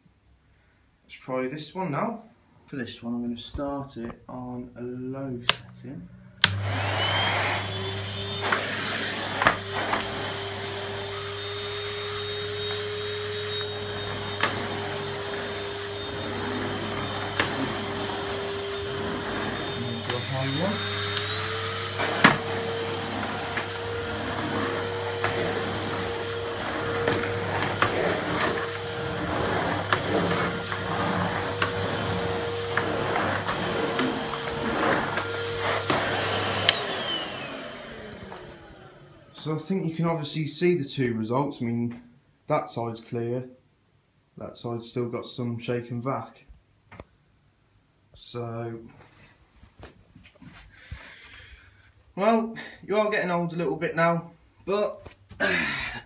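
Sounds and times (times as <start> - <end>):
vacuum cleaner running: 6.3 - 40.0.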